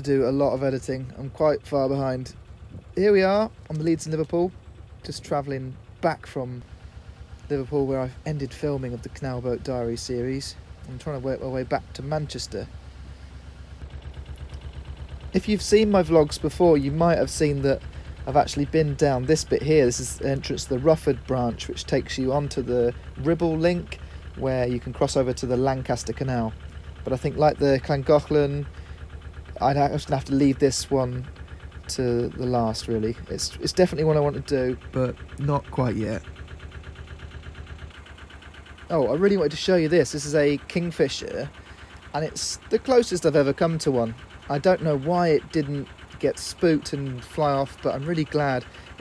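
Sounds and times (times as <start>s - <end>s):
diesel engine throbbing: 0.0s - 49.0s.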